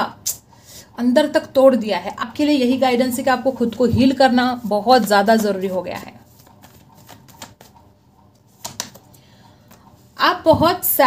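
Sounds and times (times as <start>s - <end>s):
cards being shuffled: 6.0s - 9.8s.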